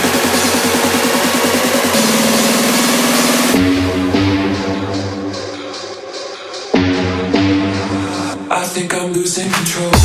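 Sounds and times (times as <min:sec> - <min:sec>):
steady bass and synth tones: 0:00.0 - 0:06.1
repeated synth note rolling: 0:01.2 - 0:05.2
rising noise sweep: 0:01.7 - 0:03.6.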